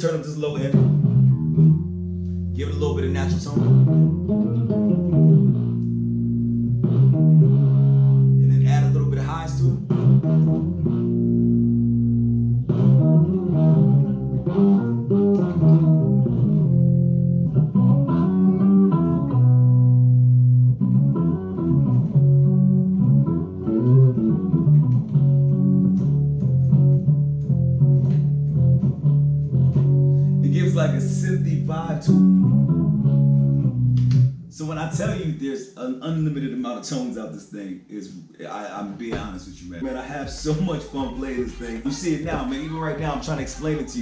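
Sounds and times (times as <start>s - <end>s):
electric bass with octave effect: 0.1s - 35.3s, 39.1s - 44.0s.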